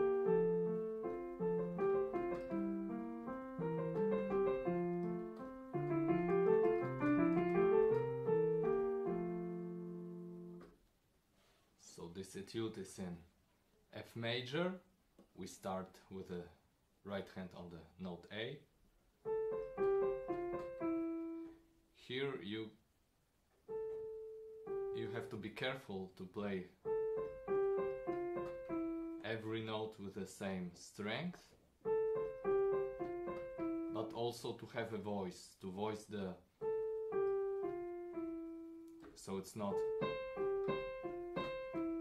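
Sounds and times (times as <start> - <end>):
piano notes stepping downward: 0.0 - 10.8, 19.2 - 21.6, 23.6 - 25.5, 26.8 - 29.8, 31.8 - 35.0, 36.6 - 42.0.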